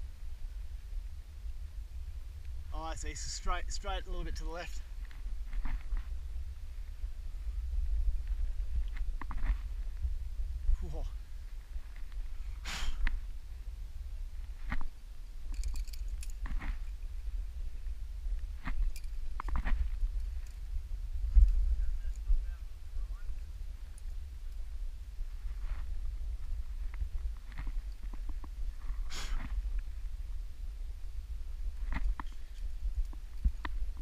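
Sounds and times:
wind rumble on microphone: 0:00.0 - 0:34.0
person breathing: 0:12.6 - 0:13.1, 0:29.0 - 0:29.5
climbing gear clicks and scrapes: 0:15.5 - 0:17.2, 0:18.4 - 0:20.6.

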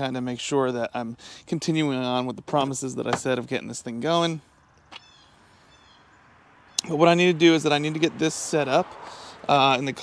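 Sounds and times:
man's voice: 0:00.0 - 0:04.4, 0:06.8 - 0:10.0
faint outdoor ambience: 0:00.0 - 0:10.0
small bird chirping: 0:04.6 - 0:07.0.

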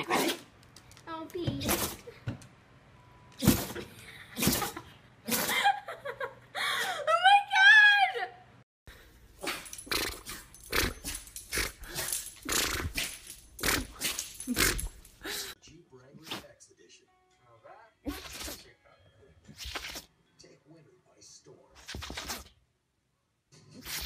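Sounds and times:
dog sneezing: 0:03.4 - 0:05.5, 0:09.4 - 0:15.0, 0:18.1 - 0:18.6, 0:19.5 - 0:20.1, 0:21.8 - 0:22.5, 0:23.8 - 0:24.0.

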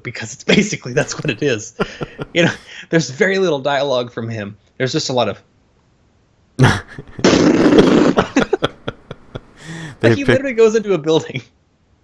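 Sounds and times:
man making explosion sound: 0:06.6 - 0:10.6.

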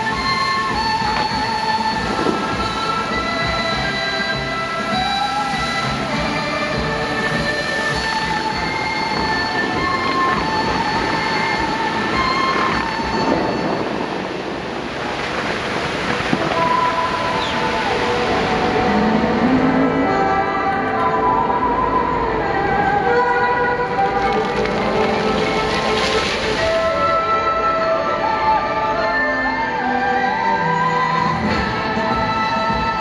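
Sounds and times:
fountain water spraying and splashing: 0:00.0 - 0:33.0
music over loudspeakers: 0:00.0 - 0:33.0.

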